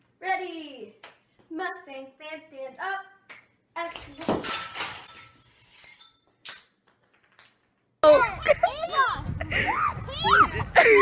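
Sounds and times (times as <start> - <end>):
glass shattering: 4.1 - 7.7
tinkling glass pieces: 4.1 - 7.8.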